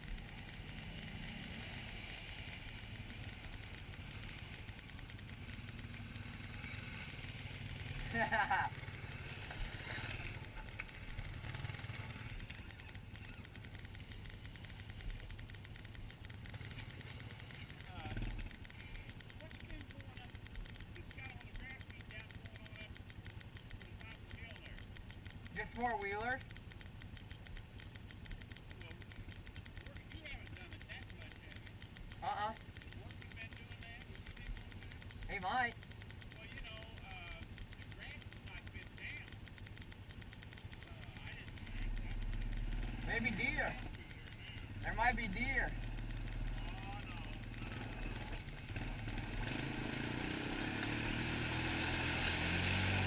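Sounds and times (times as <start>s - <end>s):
atv engines idling: 0.0s - 53.0s.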